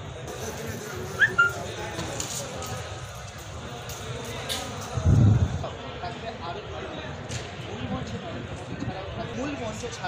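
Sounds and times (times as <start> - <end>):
high-pitched animal cries: 1.2 - 1.6.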